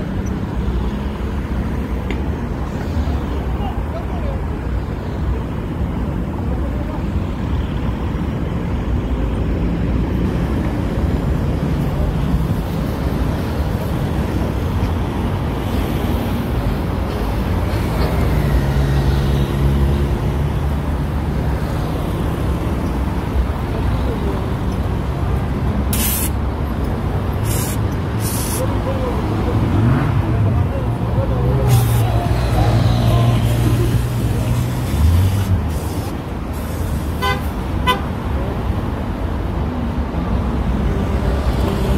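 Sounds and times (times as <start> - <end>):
vehicles passing: 0.0 - 41.9
voices: 2.1 - 7.8, 23.5 - 25.4, 27.5 - 37.0
vehicle horn: 37.2 - 38.1.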